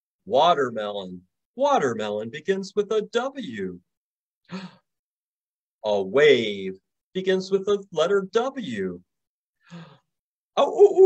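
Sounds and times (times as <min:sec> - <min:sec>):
man speaking: 0:00.3 - 0:03.9, 0:05.8 - 0:09.1
man sighing: 0:04.5 - 0:04.8, 0:09.6 - 0:10.0.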